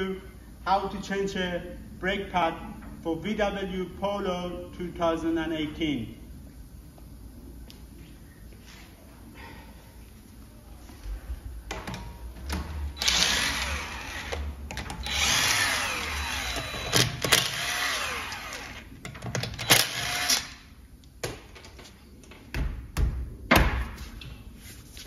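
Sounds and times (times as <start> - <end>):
cordless power tool whirring: 13.0 - 18.9, 19.6 - 20.6.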